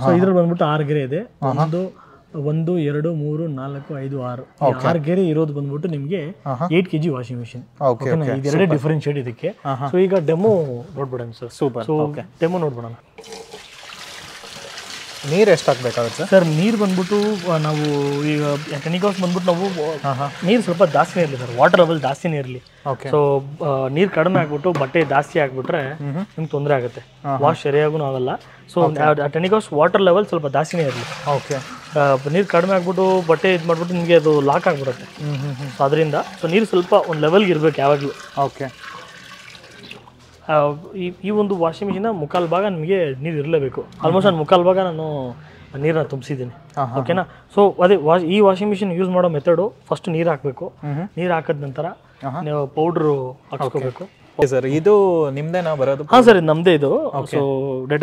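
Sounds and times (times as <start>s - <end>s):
man talking: 0.0s - 13.0s, 15.2s - 38.8s, 40.5s - 58.0s
water poured into washing machine: 13.2s - 22.2s, 30.7s - 40.1s.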